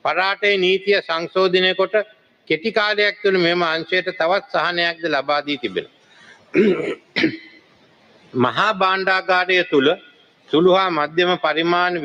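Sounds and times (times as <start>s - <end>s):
man clearing his throat: 6.5s - 7.7s.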